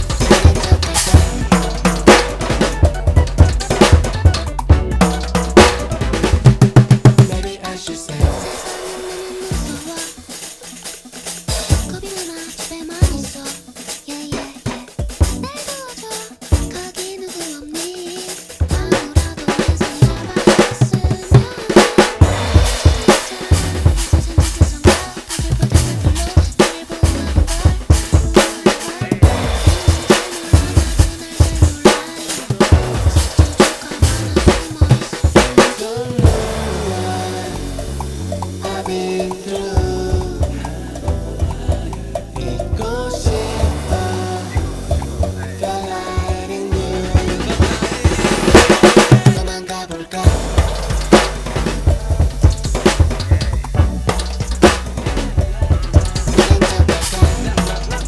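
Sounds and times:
bass line: 0.0s - 10.0s, 22.2s - 24.9s, 25.6s - 28.3s, 29.2s - 31.5s, 32.6s - 58.0s
backing track music: 0.0s - 58.0s
jazz drum kit played with rods: 0.0s - 58.0s.

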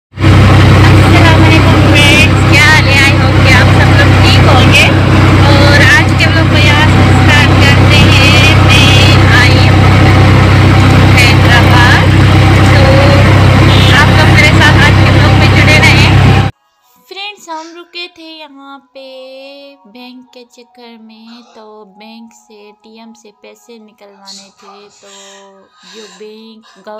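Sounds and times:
voices: 0.8s - 16.5s, 21.2s - 26.9s.

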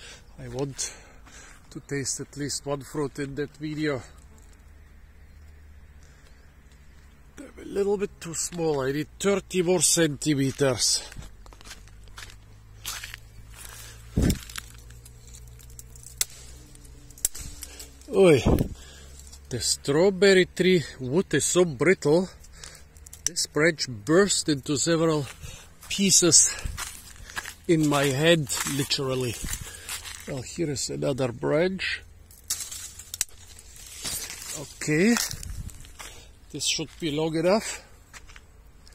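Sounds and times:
branch rustling through foliage: 10.5s - 19.6s, 25.2s - 30.6s, 32.2s - 37.2s
dry wood snapping: 11.4s - 19.4s, 22.4s - 23.4s, 32.2s - 36.2s.

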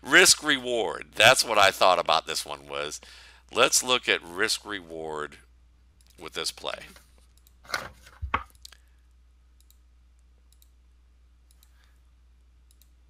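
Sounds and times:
computer mouse clicking: 10.5s - 10.8s, 11.5s - 12.0s, 12.7s - 13.0s.

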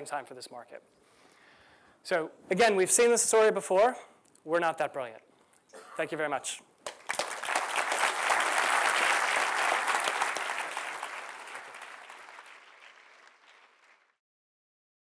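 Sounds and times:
audience applauding: 6.8s - 14.2s.

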